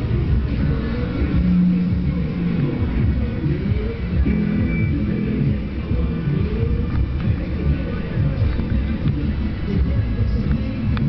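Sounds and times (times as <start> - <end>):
muffled live band music: 0.0 - 11.0.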